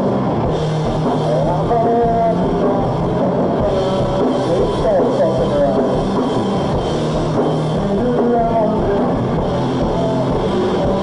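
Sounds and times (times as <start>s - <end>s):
drum kit: 0.0s - 11.0s
electric guitars: 0.0s - 11.0s.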